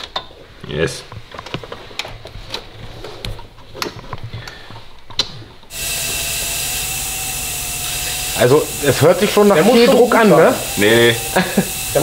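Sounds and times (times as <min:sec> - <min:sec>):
compressed air hissing: 0:05.7 - 0:12.0.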